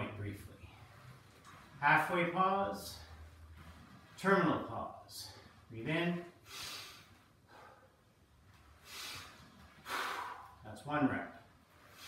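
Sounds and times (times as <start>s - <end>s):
sharp breath in: 8.8s - 10.6s
man exhaling forcefully: 9.0s - 10.6s.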